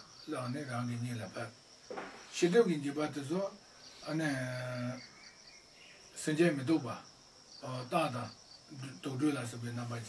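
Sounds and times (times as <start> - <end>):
crickets chirring: 0.0 - 10.0
man talking: 0.3 - 1.5, 2.3 - 5.0, 6.2 - 7.0, 7.6 - 10.0.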